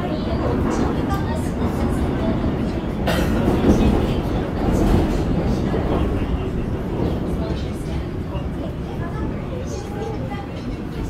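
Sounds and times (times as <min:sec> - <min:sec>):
subway train rumbling: 0:00.0 - 0:11.0.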